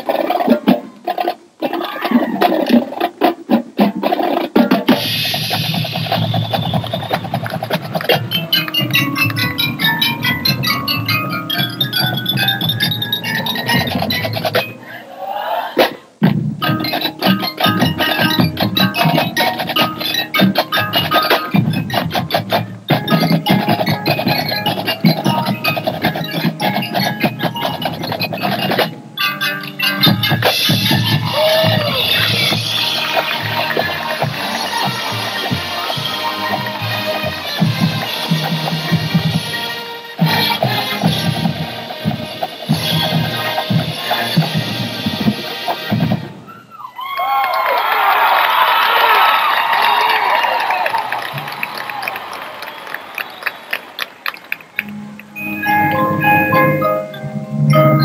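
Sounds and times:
snare drumline: 0:00.0 - 0:14.7, 0:15.8 - 0:46.7
brass and woodwinds playing: 0:30.4 - 0:46.7.

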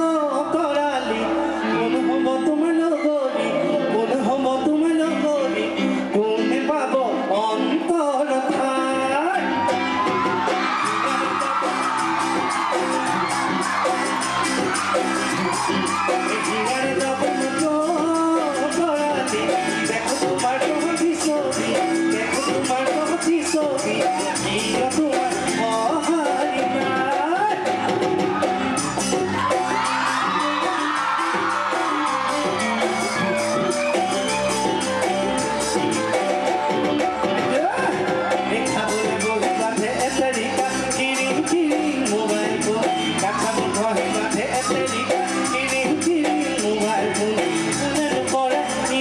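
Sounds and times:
man singing into microphone: 0:00.0 - 0:09.7, 0:10.4 - 0:14.2, 0:15.4 - 0:29.8, 0:37.3 - 0:49.0
bass guitar: 0:00.0 - 0:49.0
electric guitar: 0:00.0 - 0:49.0
crowd whooping: 0:09.0 - 0:49.0
percussion beat: 0:09.4 - 0:49.0.

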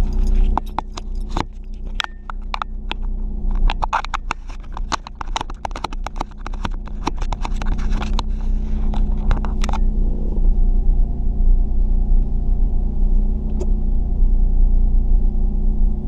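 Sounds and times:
sharp metallic clicks: 0:00.0 - 0:09.9
car engine idling: 0:00.0 - 0:16.0.

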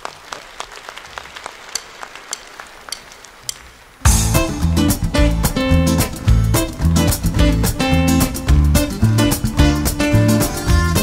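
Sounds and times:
audience clapping: 0:00.0 - 0:04.1
band playing: 0:04.0 - 0:11.0
heavy bass: 0:04.1 - 0:11.0.

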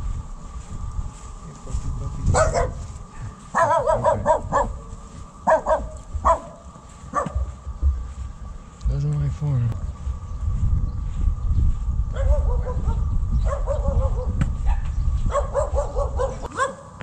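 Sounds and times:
small dog barking: 0:02.3 - 0:07.5, 0:12.1 - 0:17.0.

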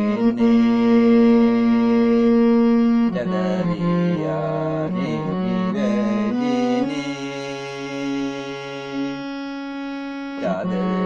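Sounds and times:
harmonium melody: 0:00.0 - 0:11.0
man singing: 0:03.0 - 0:09.3, 0:10.3 - 0:11.0.

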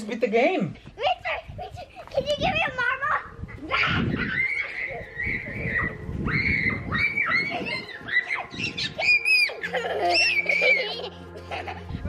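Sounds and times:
children shrieking and squealing: 0:01.0 - 0:11.9.

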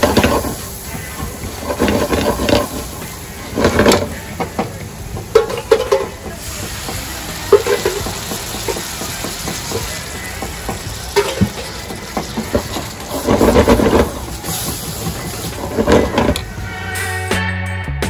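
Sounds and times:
spatula scraping a pan: 0:00.0 - 0:04.6, 0:07.5 - 0:16.5
oil popping: 0:00.0 - 0:16.6
sauce sizzling in a frying pan: 0:06.4 - 0:15.6.

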